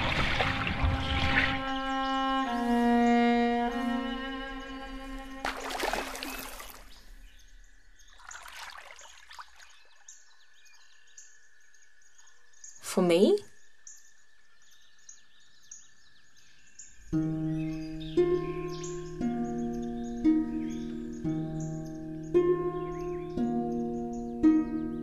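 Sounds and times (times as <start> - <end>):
bowed cello and violin music: 0.0 - 6.7, 17.1 - 25.0.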